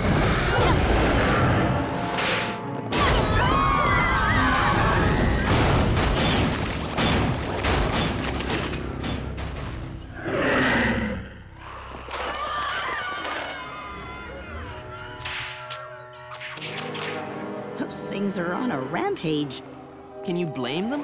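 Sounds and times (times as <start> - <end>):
action soundtrack music: 14.6 - 21.0.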